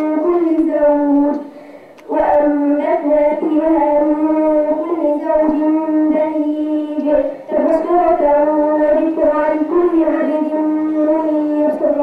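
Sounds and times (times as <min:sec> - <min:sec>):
boy chanting recitation: 0:00.0 - 0:12.0.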